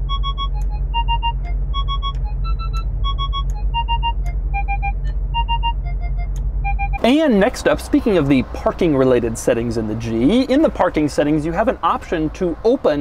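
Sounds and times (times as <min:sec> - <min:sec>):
parking sensor beeps: 0:00.0 - 0:07.0
steady low hum: 0:00.0 - 0:12.7.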